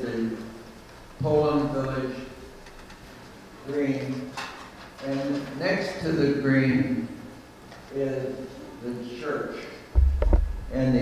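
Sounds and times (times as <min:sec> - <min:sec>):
man speaking: 0:00.0 - 0:00.5, 0:01.2 - 0:02.4, 0:07.9 - 0:09.8, 0:10.7 - 0:11.0.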